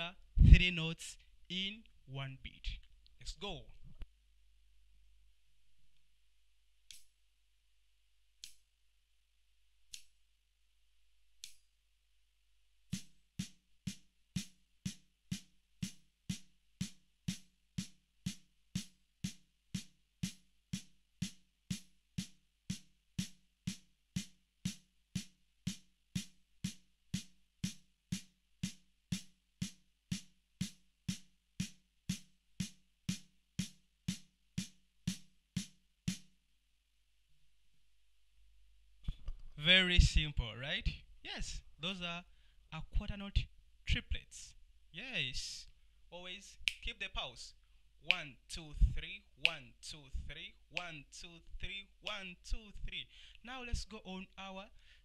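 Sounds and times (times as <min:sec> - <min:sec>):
count-in clicks: 0:48.1 - 0:48.7, 0:49.4 - 0:50.0.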